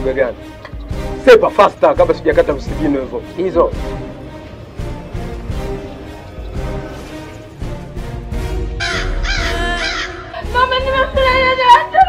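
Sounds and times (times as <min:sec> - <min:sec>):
low background music: 0:00.0 - 0:12.0
crow cawing: 0:08.6 - 0:10.6.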